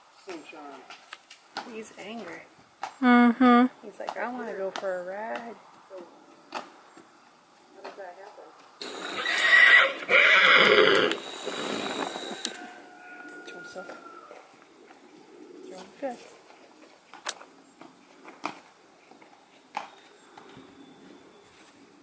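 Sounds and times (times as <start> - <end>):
horse neighing: 8.8 - 14.5.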